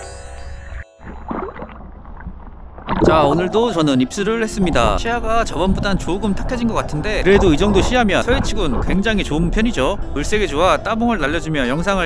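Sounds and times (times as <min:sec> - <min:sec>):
low underwater rumble: 0:01.0 - 0:12.0
muffled underwater water movement: 0:01.0 - 0:12.0.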